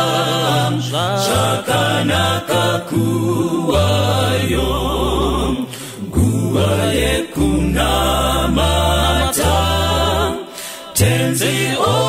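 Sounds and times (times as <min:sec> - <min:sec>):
choir singing a hymn: 0:00.0 - 0:12.0
short breaths: 0:05.7 - 0:06.1, 0:10.5 - 0:10.9.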